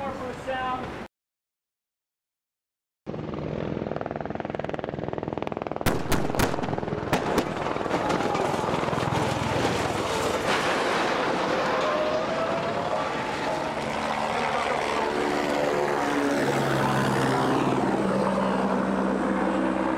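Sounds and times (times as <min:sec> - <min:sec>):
vehicle crashing and tumbling: 0:07.3 - 0:13.6
rumbling roar: 0:07.4 - 0:15.2.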